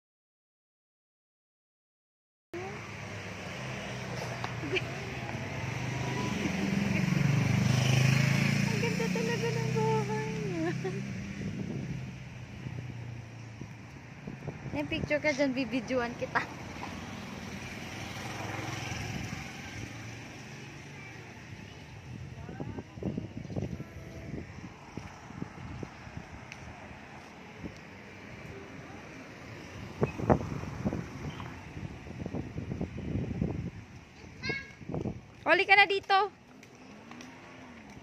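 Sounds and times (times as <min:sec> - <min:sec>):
vehicle engine rumbling: 0:02.6 - 0:38.0.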